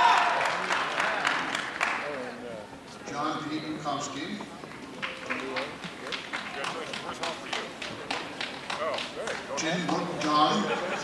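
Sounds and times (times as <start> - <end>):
scattered applause: 0.0 - 2.4, 5.0 - 10.4.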